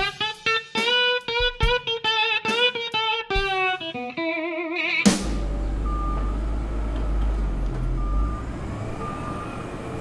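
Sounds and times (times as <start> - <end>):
heavy machinery rumbling: 5.2 - 10.0
reversing alarm beeps: 5.8 - 7.3, 7.9 - 10.0.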